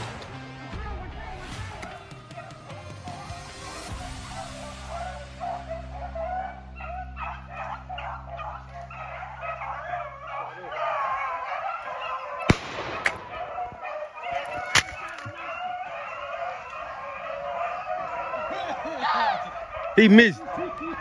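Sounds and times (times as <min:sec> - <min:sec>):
hounds baying: 0:00.0 - 0:21.0
gunshots: 0:12.5 - 0:13.6.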